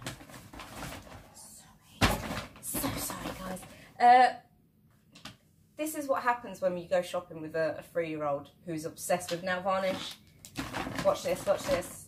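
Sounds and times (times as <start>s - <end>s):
paper bag rustling and crinkling: 0.0s - 3.8s, 9.7s - 12.0s.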